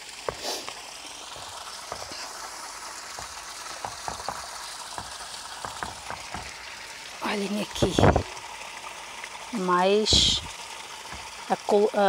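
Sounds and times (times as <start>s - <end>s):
steady hiss: 0.0s - 7.2s.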